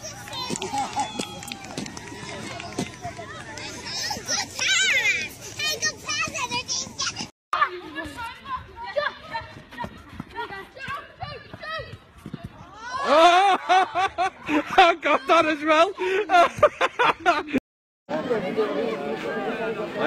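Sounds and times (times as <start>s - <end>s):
adults talking: 0.0s - 17.0s, 18.1s - 20.0s.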